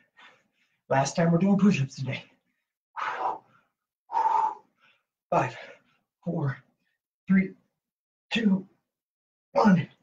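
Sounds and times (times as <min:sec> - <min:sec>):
man breathing hard: 0:02.4 - 0:06.1.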